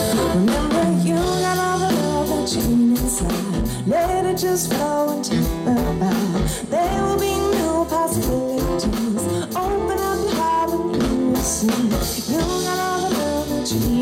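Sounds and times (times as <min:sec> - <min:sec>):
live band playing: 0:00.0 - 0:14.0
woman singing: 0:00.0 - 0:14.0.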